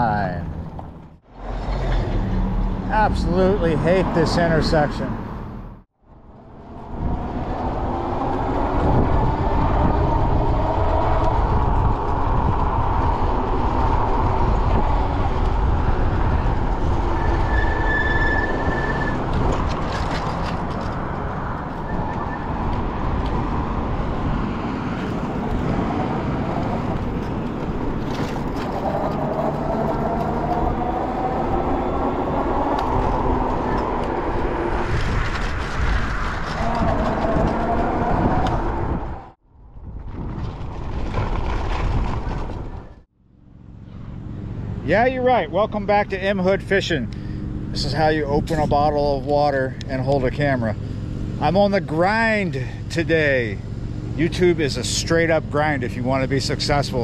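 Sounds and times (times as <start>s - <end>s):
tyre noise on paved road: 0.0s - 57.0s
wind buffeting microphone: 6.2s - 43.0s.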